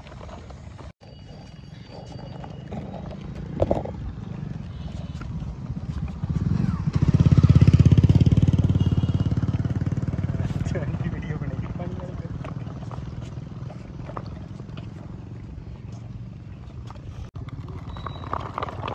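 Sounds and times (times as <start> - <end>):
engine chugging: 1.1 - 15.9.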